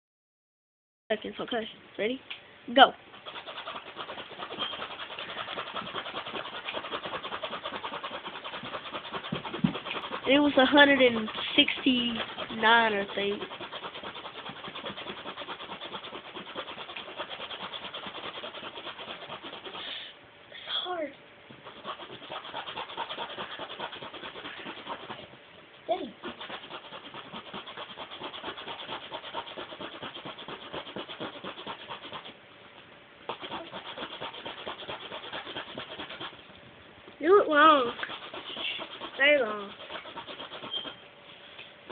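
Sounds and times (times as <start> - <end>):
zipper zipping rapidly: 3.1 - 19.9, 21.6 - 25.3, 26.0 - 32.3, 33.3 - 36.4, 37.5 - 41.0.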